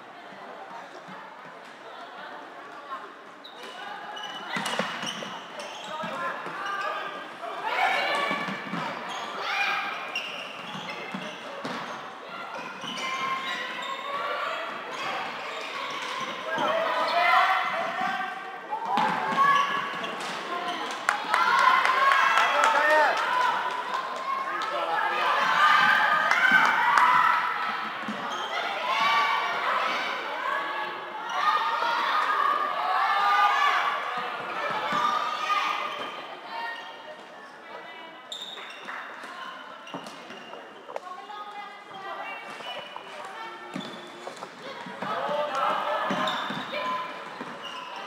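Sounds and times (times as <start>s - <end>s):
players calling and shouting: 3.5s - 37.2s, 38.1s - 48.0s.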